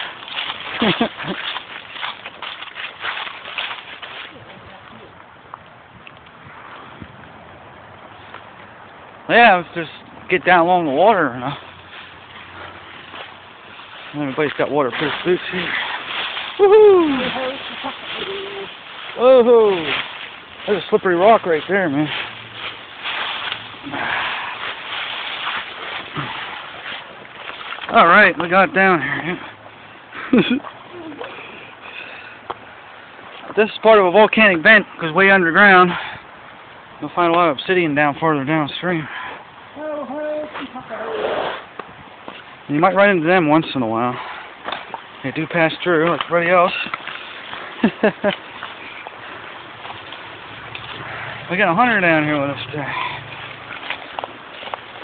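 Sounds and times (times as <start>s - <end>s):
footsteps crunching through dry leaves: 0.0s - 5.3s, 11.0s - 31.4s, 40.4s - 55.0s.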